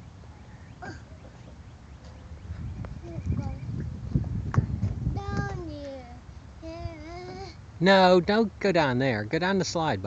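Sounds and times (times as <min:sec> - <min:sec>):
toddler vocal sounds and squeaks: 0:00.8 - 0:01.1.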